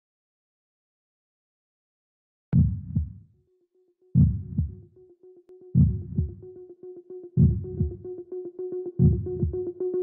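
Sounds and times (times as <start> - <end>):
heartbeat thump: 2.6 - 3.2, 4.2 - 4.8, 5.8 - 6.4, 7.4 - 8.0, 9.0 - 9.6.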